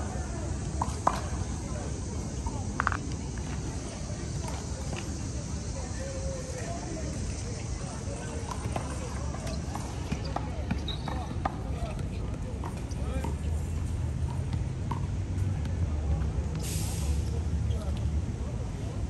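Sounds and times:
distant voices: 0.0 - 19.0
brief hiss: 16.6 - 17.3.

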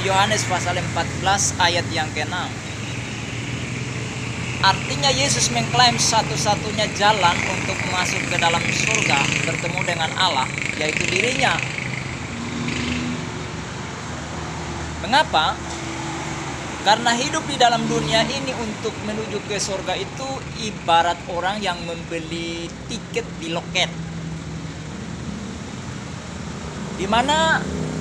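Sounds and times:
road traffic hum: 0.0 - 28.0.

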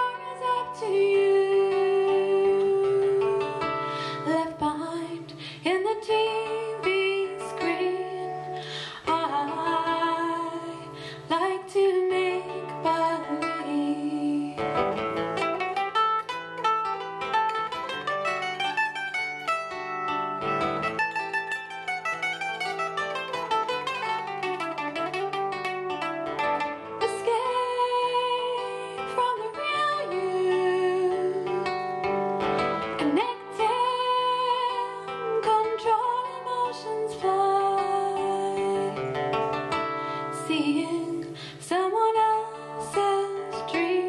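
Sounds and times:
woman singing: 0.0 - 16.0, 27.0 - 32.1, 32.8 - 44.0
acoustic guitar: 0.0 - 44.0
mandolin playing: 0.0 - 44.0.

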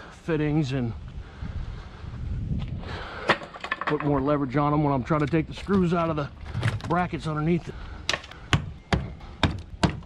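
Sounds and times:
wind rumbling on microphone: 0.1 - 10.0.

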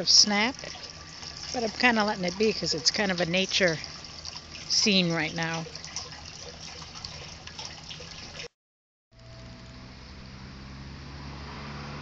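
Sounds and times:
low steady hum: 0.0 - 8.5
water fountain trickling and splashing: 0.0 - 8.6.

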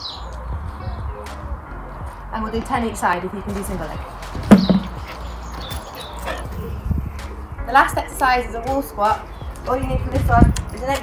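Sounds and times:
thump: 4.5 - 5.0.

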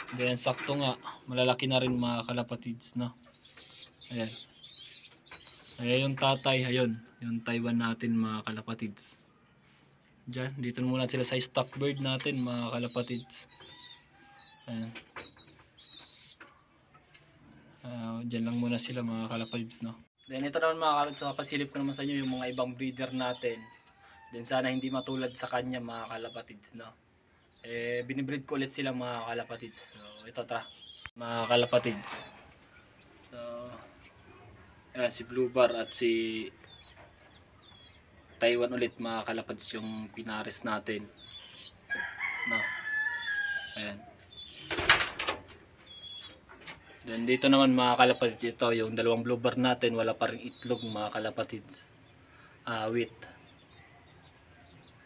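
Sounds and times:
birds chirping: 0.0 - 55.0
rooster crowing: 41.9 - 43.8.

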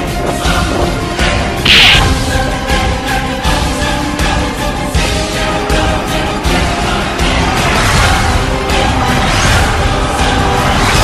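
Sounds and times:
background music: 0.0 - 11.0
sharp swish: 1.7 - 2.2
whoosh: 1.7 - 2.3.

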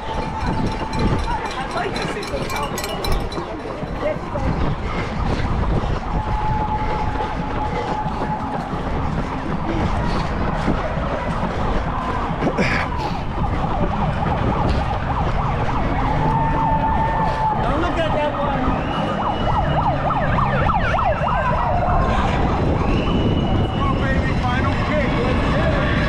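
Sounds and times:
loud background noise: 0.0 - 26.0
siren sweeping up and down: 13.0 - 26.0.

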